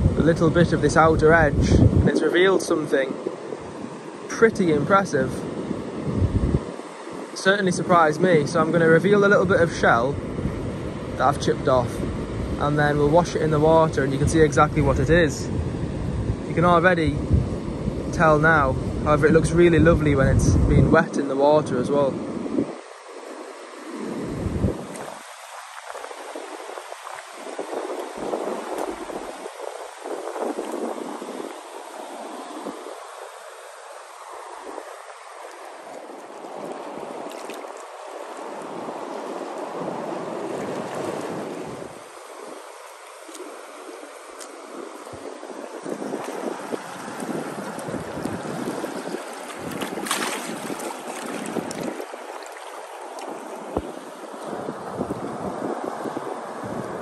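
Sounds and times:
sea water washing around rocks: 0:00.0 - 0:57.0
wind buffeting microphone: 0:00.0 - 0:57.0.

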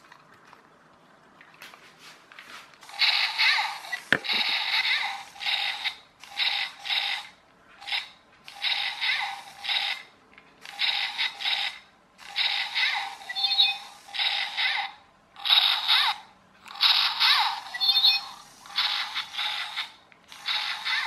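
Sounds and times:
toy motor and gears whirring: 0:02.8 - 0:21.0.

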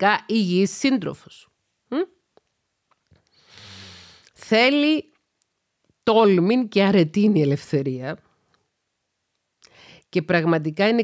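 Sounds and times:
woman speaking: 0:00.0 - 0:02.2, 0:04.4 - 0:05.2, 0:06.0 - 0:08.2, 0:10.1 - 0:11.0
soft in-breath: 0:03.2 - 0:04.3, 0:09.6 - 0:10.1.

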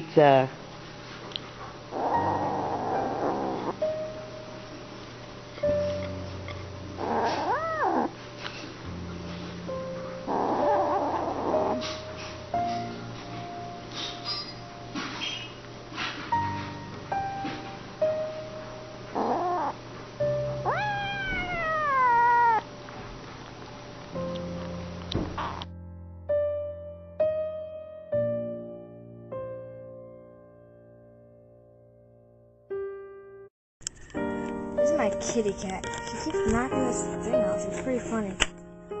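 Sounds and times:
cat meowing: 0:07.0 - 0:08.2, 0:19.2 - 0:19.8, 0:20.6 - 0:22.7.

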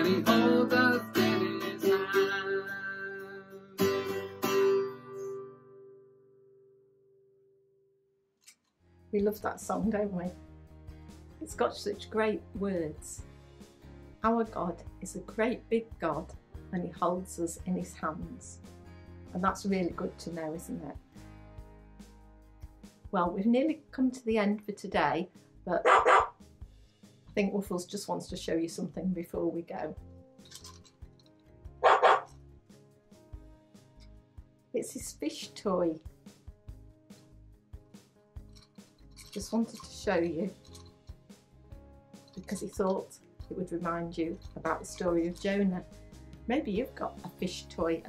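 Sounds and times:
quiet background music: 0:00.0 - 0:06.7, 0:08.4 - 0:48.0
dog barks: 0:25.8 - 0:26.4, 0:31.8 - 0:32.4.

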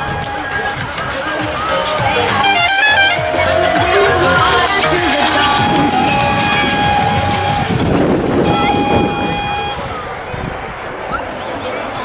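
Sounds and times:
voices: 0:00.0 - 0:12.0
engines running: 0:00.2 - 0:11.0
vehicle horn blasts: 0:02.2 - 0:09.9.

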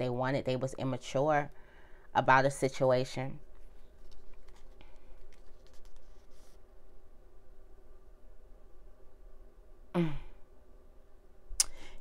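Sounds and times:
faint room hum: 0:00.0 - 0:12.0
woman sighing: 0:09.9 - 0:10.4.

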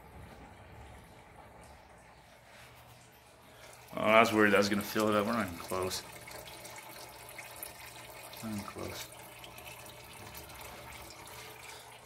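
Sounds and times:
fluid trickling into drain pan: 0:01.5 - 0:12.0.

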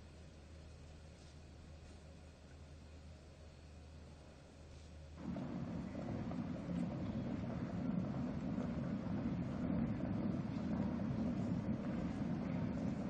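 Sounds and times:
steady low rumble: 0:05.2 - 0:13.0.

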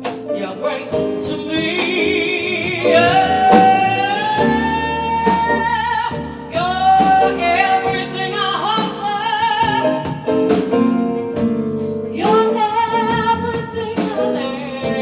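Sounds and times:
sustained instrumental accompaniment: 0:00.0 - 0:15.0
woman singing with vibrato: 0:00.3 - 0:10.3, 0:12.2 - 0:15.0.

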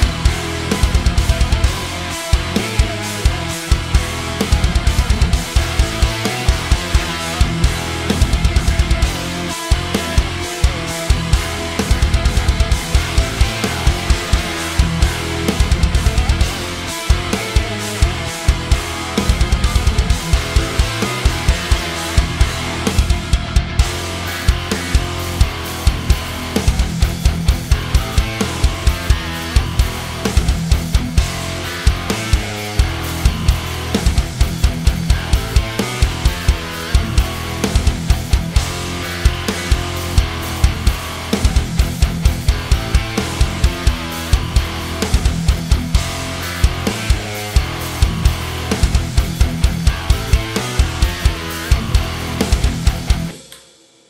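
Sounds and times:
bass guitar: 0:00.0 - 0:53.4
high-gain metal guitar riff: 0:00.0 - 0:53.6.

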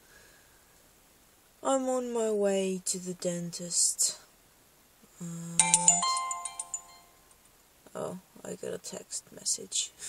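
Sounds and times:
phone message chime: 0:05.6 - 0:07.2.

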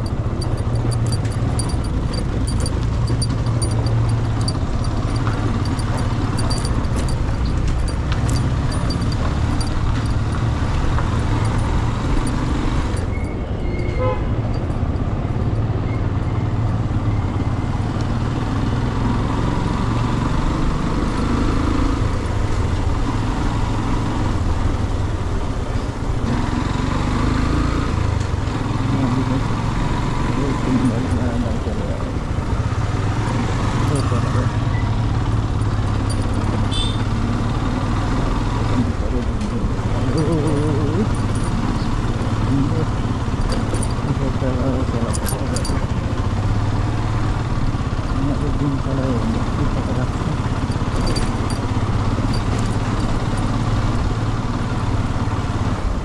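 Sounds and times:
motorcycle engine running: 0:00.0 - 0:56.0
street traffic: 0:00.0 - 0:56.0.

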